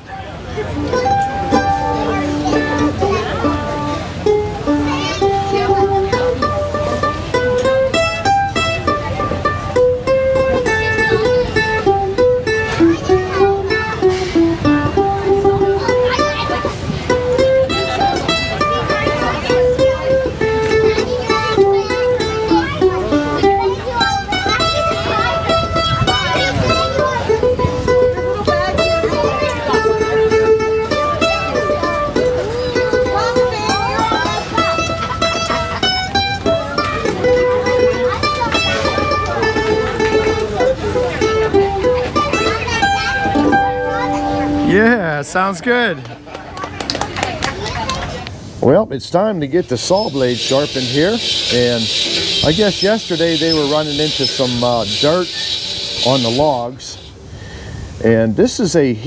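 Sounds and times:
mandolin melody: 0:00.0 - 0:59.0.

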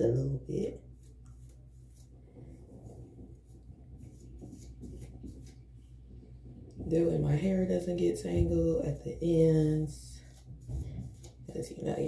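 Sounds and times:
comb scratching through hair: 0:00.4 - 0:12.0.

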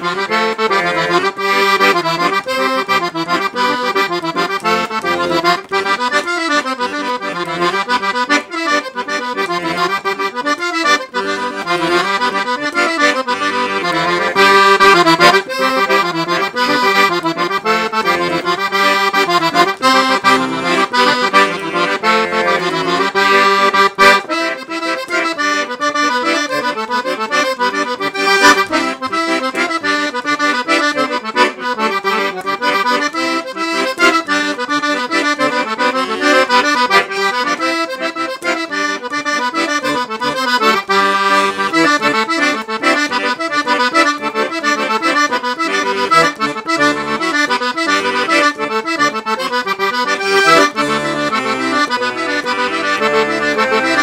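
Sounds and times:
accordion playing a tune: 0:00.0 - 0:54.0.

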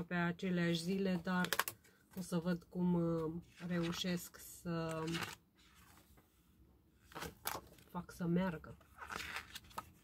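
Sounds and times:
calendar page flipping: 0:03.5 - 0:06.3, 0:07.0 - 0:08.0, 0:08.8 - 0:10.0.

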